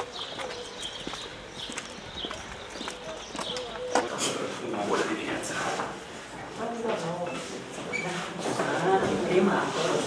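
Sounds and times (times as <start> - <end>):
footsteps on pavement: 0.0 - 5.2.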